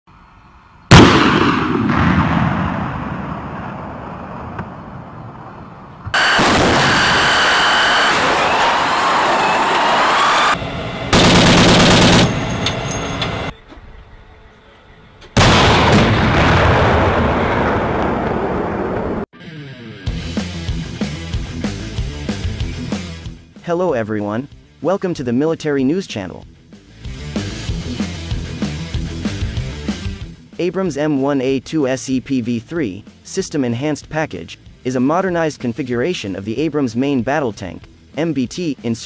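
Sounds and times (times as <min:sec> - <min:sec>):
tank gun firing boom: 0:00.9 - 0:05.2, 0:06.1 - 0:07.2, 0:15.4 - 0:19.2
loud vehicle noise: 0:05.5 - 0:13.6
thin high whine: 0:06.2 - 0:11.2.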